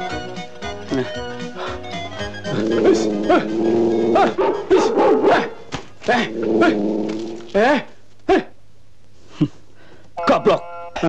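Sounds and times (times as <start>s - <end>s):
dog-like yelping and whining: 2.5s - 5.7s.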